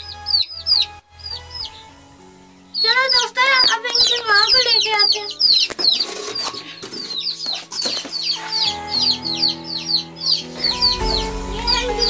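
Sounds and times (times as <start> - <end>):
baby chicks peeping: 0.0 - 2.0, 2.6 - 12.0
music with held notes: 0.0 - 12.0.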